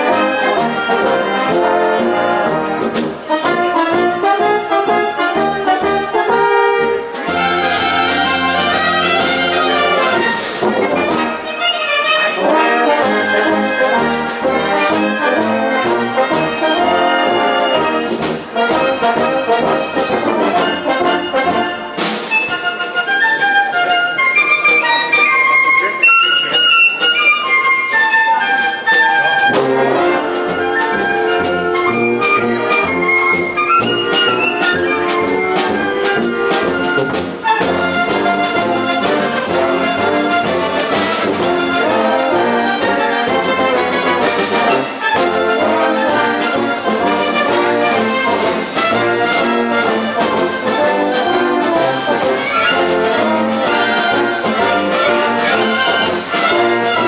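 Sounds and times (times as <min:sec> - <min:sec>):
military brass band playing: 0:00.0 - 0:57.0.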